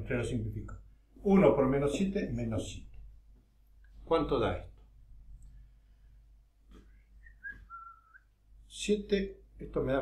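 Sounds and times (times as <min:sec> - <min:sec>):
faint descending whistle: 0:07.2 - 0:08.3.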